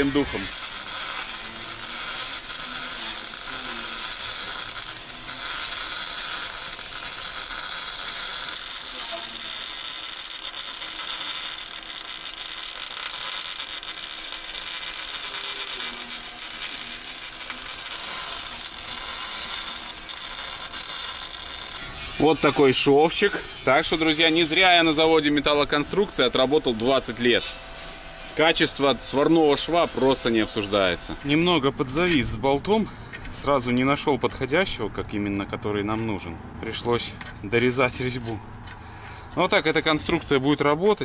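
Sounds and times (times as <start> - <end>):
arc welding crackle and sizzle: 0.0 - 32.7.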